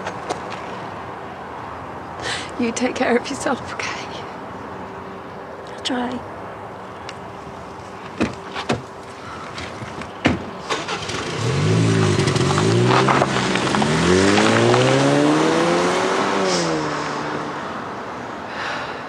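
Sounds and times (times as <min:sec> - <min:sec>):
car door opening and shutting: 0:08.0 - 0:11.4
car engine accelerating: 0:10.6 - 0:18.3.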